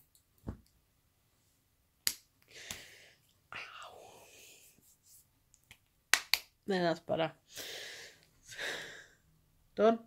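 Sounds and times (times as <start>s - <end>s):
breathy whispered voice: 3.5s - 4.9s.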